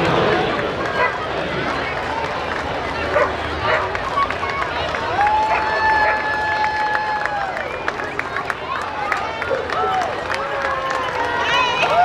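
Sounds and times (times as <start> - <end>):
spectators chattering: 0.0 - 12.0
dog barks: 3.1 - 3.9.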